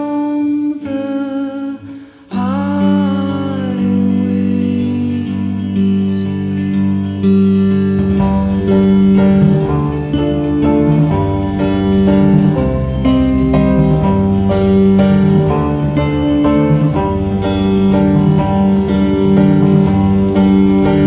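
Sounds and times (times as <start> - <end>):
guitar chords: 0.0 - 21.0
small band playing: 6.8 - 21.0.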